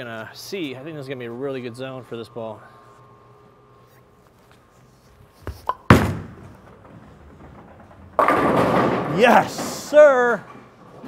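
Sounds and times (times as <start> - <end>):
bowling ball thunk on lane: 5.8 - 9.7
bowling pins crashing: 5.8 - 11.0
bowling ball rolling rumble: 5.9 - 10.0.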